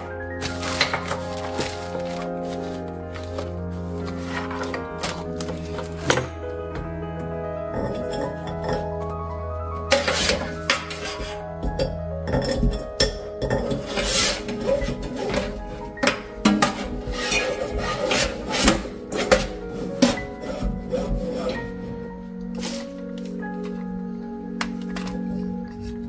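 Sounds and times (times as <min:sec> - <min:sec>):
background music: 0:00.0 - 0:26.0
hose scraping against metal: 0:09.9 - 0:11.4, 0:13.6 - 0:15.6, 0:16.6 - 0:21.8.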